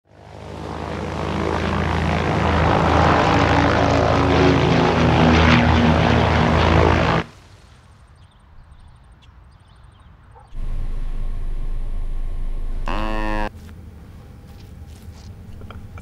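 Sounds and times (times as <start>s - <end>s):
propeller airplane engine droning: 0.1s - 7.6s, 10.5s - 16.0s.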